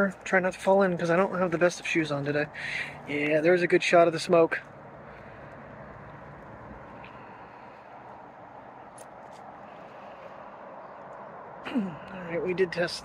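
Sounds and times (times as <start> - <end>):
outdoor background noise: 0.0 - 13.0.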